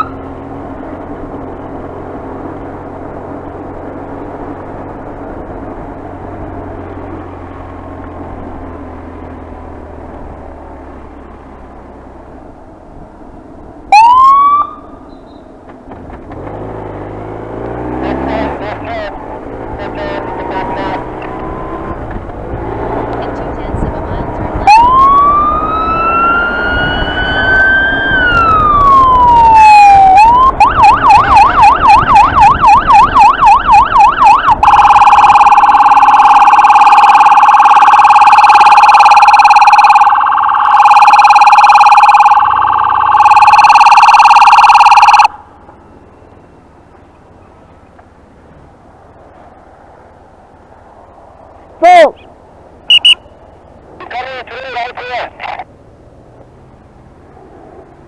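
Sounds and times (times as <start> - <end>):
motorcycle siren wailing and yelping: 0.0 - 0.3, 13.9 - 15.1, 17.9 - 22.0, 23.3 - 45.5, 52.9 - 53.4
engine and wind rumble: 0.0 - 58.0.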